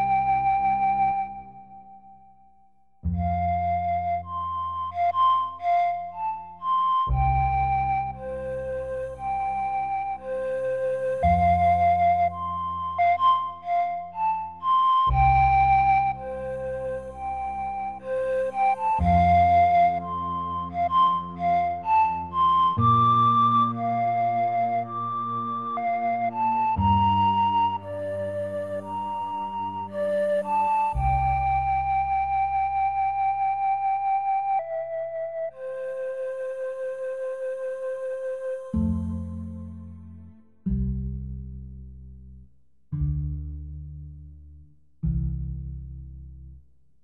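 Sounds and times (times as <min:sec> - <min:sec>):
flute melody: 0:00.0 - 0:40.0.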